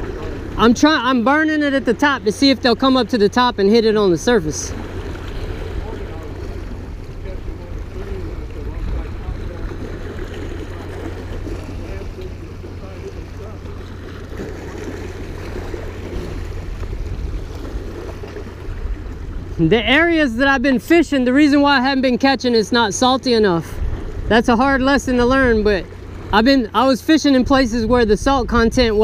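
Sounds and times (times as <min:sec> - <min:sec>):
wind buffeting microphone: 0:00.0 - 0:22.4, 0:23.4 - 0:29.0
waves splashing against rocks: 0:00.0 - 0:28.7.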